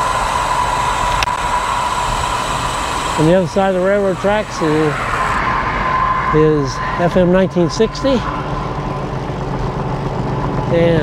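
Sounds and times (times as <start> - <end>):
wind noise: 0.0 - 10.7.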